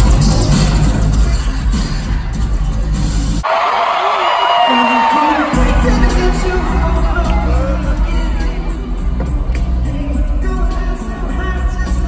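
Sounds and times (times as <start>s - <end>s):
loud band with heavy bass: 0.0s - 3.5s, 5.2s - 12.0s
person singing: 4.6s - 12.0s.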